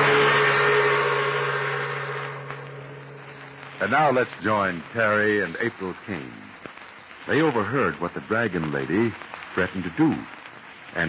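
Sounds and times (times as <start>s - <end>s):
large gong ringing: 0.0s - 3.8s.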